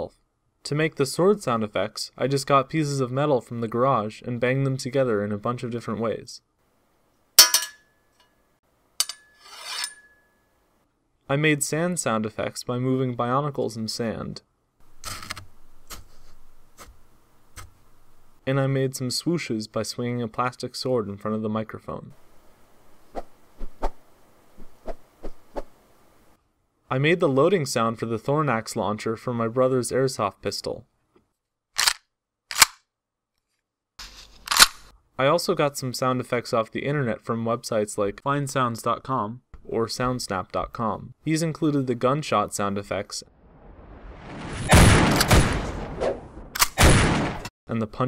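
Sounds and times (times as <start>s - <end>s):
metal strips scraping: 9.0s - 10.2s.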